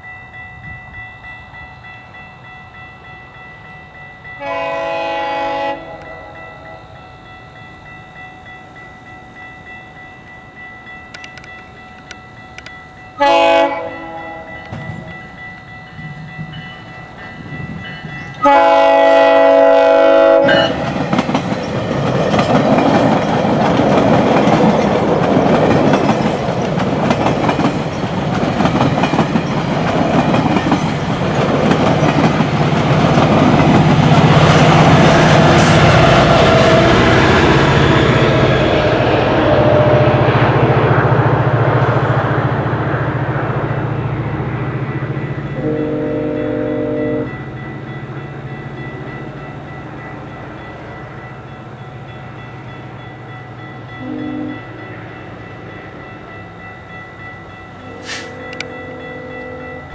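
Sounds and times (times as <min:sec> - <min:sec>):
train horn chord: 0:04.4 - 0:07.0, 0:13.2 - 0:15.2, 0:18.4 - 0:20.9, 0:34.7 - 0:40.7, 0:45.5 - 0:47.6, 0:54.0 - 0:54.8
train wheels clattering on rail: 0:11.0 - 0:38.9.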